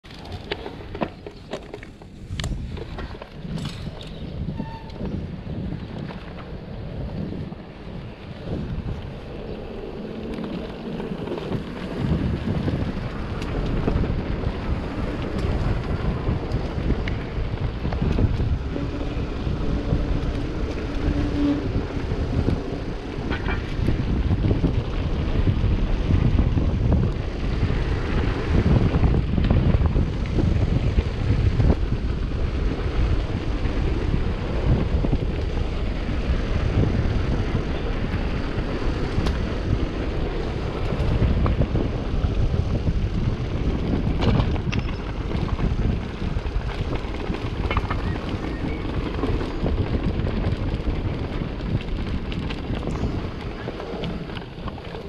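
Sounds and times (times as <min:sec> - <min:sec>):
tyres rumbling on path: 0:00.0 - 0:55.0
wind rushing over microphone: 0:00.0 - 0:55.0.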